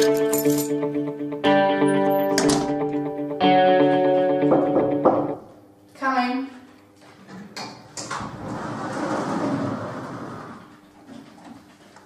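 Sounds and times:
door swinging rubbing noise: 8.1s - 10.8s.

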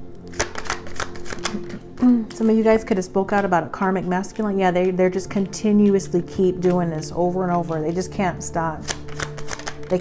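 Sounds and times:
soft background music: 0.0s - 10.0s
cards being shuffled: 0.2s - 3.5s, 5.8s - 10.0s.

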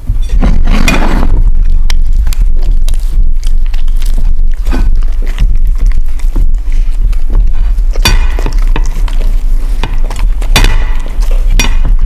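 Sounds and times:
crust crunching: 0.0s - 12.0s
dogs snuffling and licking: 0.1s - 12.0s.

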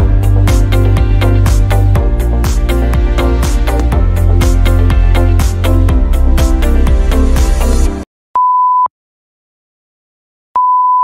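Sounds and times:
background music with a beat: 0.0s - 8.0s.

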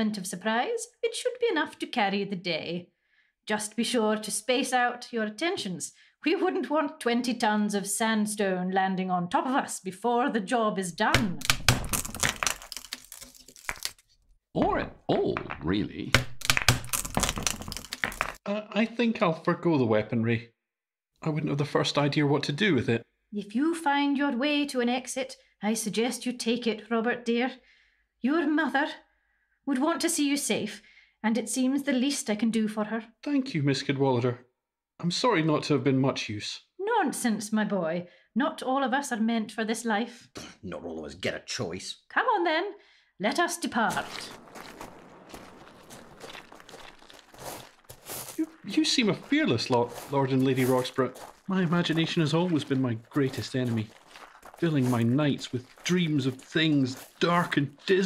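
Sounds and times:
wooden timbers cracking and splintering: 11.2s - 14.1s, 16.2s - 18.4s, 44.0s - 48.6s
footsteps walking: 11.3s - 14.0s, 16.4s - 18.4s, 43.9s - 58.0s.

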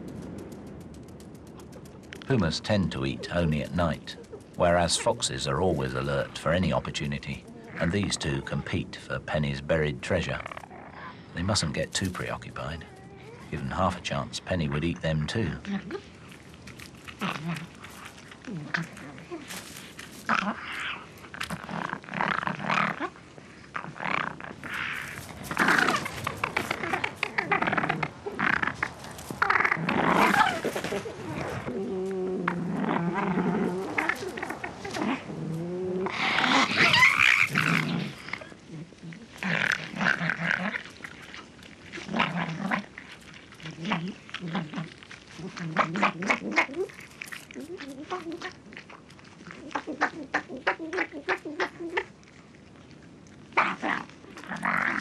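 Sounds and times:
foxes snarling and growling: 0.0s - 55.0s
animal yelping: 12.6s - 13.6s, 17.1s - 52.4s.

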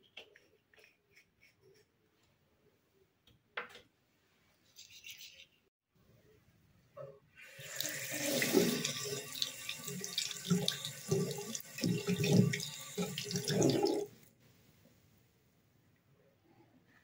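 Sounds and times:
tap water splashing into basin: 7.8s - 14.1s.

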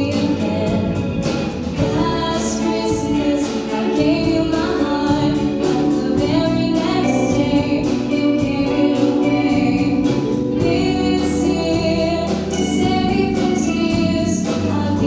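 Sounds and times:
drums: 0.0s - 15.0s
electric guitars: 0.0s - 15.0s
woman singing lead vocal: 0.0s - 15.0s.

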